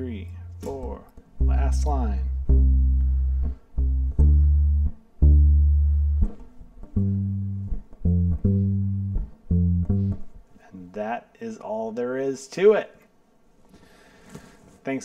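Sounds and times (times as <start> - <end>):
electric bass plucked notes: 0.0 - 10.4.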